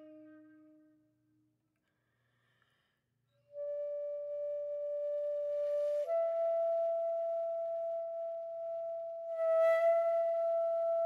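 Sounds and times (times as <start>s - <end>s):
flute holding long note: 0.0s - 1.0s, 3.5s - 11.0s.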